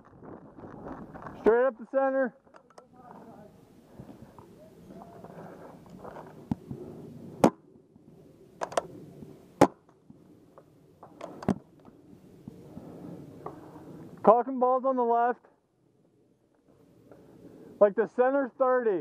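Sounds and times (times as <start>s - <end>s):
paintball marker shots: 9.6s - 10.0s.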